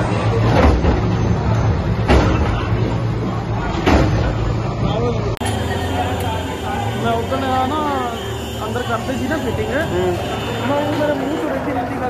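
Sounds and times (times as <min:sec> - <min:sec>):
diesel engines droning: 0:00.0 - 0:12.0
crowd murmuring: 0:02.2 - 0:12.0.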